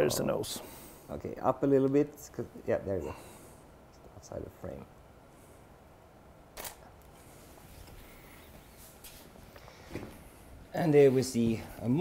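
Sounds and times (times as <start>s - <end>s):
camera shutter click: 6.6s - 6.8s.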